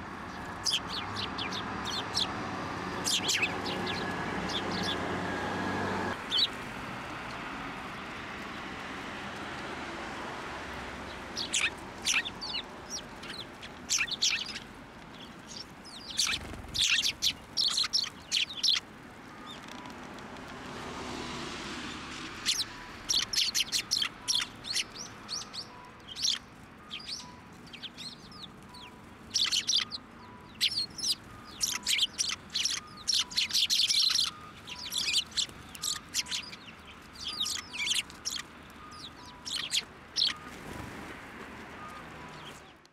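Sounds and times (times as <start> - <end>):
sparrows chirping: 0.0 - 6.6, 10.7 - 20.4, 21.7 - 40.8, 41.6 - 42.8.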